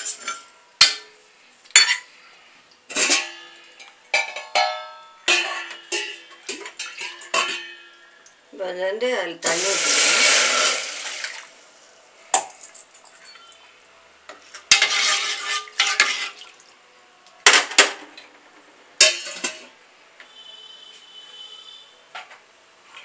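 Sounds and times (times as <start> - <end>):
water pouring into metal pot: 9.5 - 11.6
ladle stirring lentils in water: 14.8 - 16.6.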